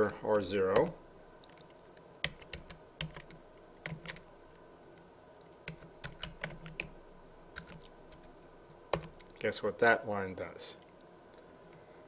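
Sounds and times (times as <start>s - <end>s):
computer keyboard typing: 0.7s - 4.3s, 5.6s - 9.3s.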